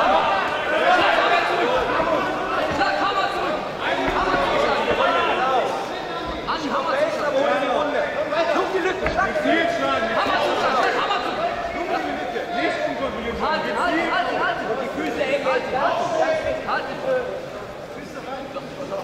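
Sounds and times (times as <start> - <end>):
crowd shouting and talking: 0.0 - 19.0.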